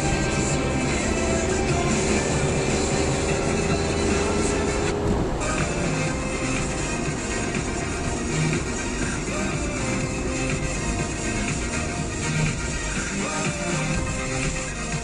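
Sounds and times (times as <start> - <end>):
music on car radio: 0.0 - 15.0
road and engine noise: 0.0 - 15.0.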